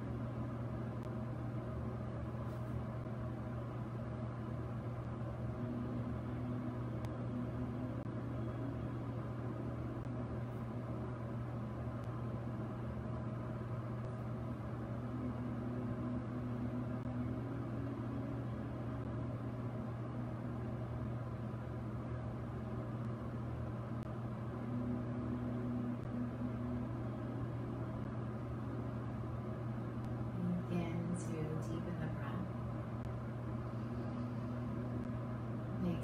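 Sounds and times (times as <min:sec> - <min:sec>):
steady low hum: 0:00.0 - 0:36.0
faint held rising tones: 0:24.0 - 0:31.8, 0:32.5 - 0:36.0.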